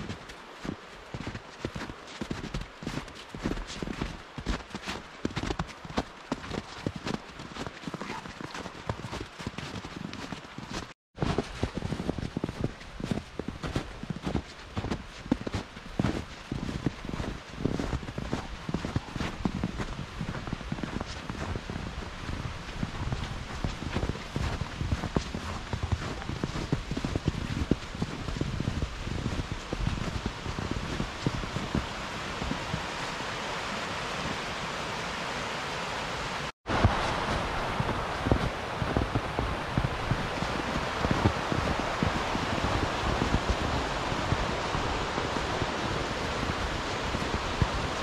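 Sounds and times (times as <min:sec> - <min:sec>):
footsteps crunching through snow: 0:00.0 - 0:34.4, 0:36.7 - 0:48.0.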